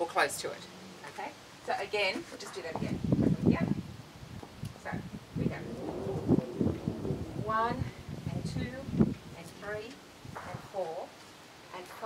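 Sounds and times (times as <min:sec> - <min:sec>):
dove cooing: 0:05.6 - 0:08.2.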